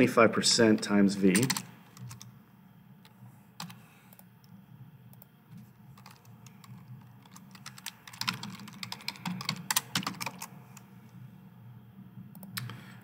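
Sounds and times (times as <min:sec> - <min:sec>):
computer keyboard typing: 0:01.4 - 0:02.3, 0:03.6 - 0:04.3, 0:06.0 - 0:10.6.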